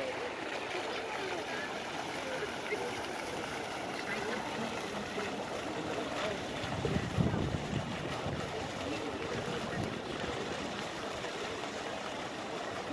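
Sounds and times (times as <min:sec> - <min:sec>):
water running over stone: 0:00.0 - 0:12.9.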